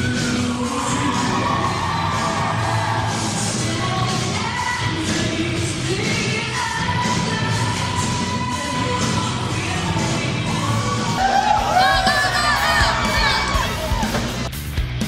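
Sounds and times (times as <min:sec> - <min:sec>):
crowd cheering and screaming: 0:00.0 - 0:03.6, 0:10.4 - 0:14.5
rock music with singing: 0:00.0 - 0:15.0.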